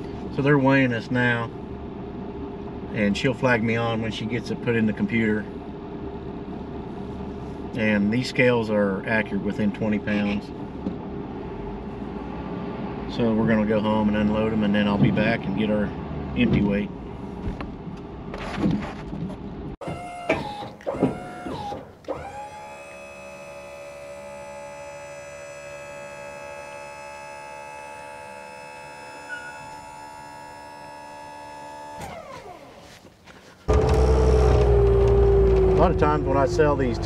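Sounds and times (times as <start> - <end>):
deep running machine sound: 0.0 - 18.3, 33.7 - 37.0
motor whine: 19.8 - 33.0, 33.7 - 37.0.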